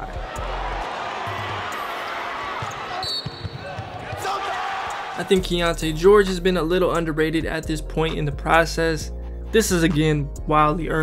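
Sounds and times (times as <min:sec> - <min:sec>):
crowd noise: 0:00.0 - 0:05.4
basketball bouncing on hardwood floor: 0:02.6 - 0:04.2.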